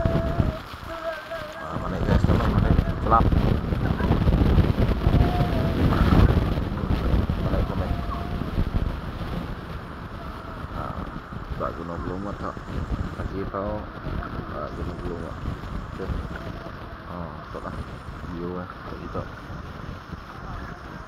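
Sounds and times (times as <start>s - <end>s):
distant voices calling: 0.0s - 21.0s
wind rumbling on microphone: 0.0s - 21.0s.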